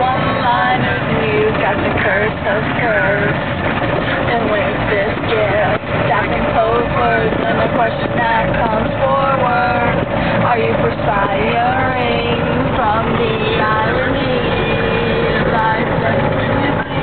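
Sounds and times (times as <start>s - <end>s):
wind rumble on microphone: 0.0s - 17.0s.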